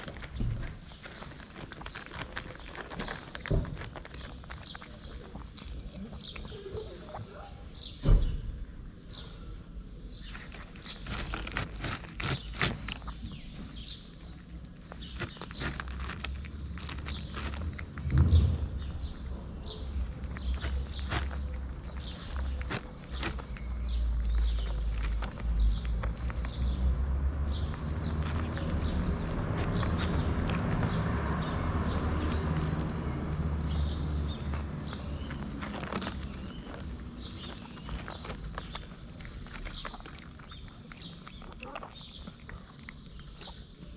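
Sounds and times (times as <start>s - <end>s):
cat crunching dry kibble: 0.0s - 7.4s, 10.1s - 43.9s.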